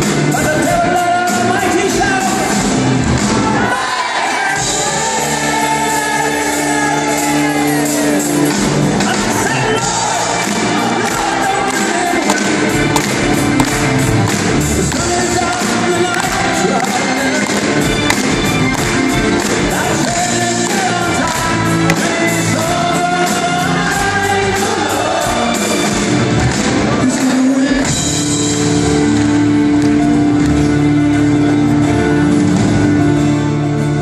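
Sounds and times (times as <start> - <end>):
live rock band playing: 0.0 - 3.7, 4.5 - 34.0.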